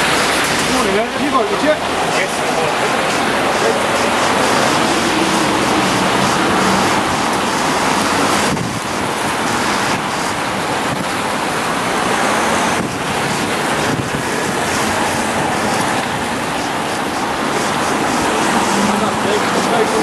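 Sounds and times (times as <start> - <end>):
rain on street and umbrellas: 0.0 - 20.0
wind buffeting microphone: 0.0 - 20.0.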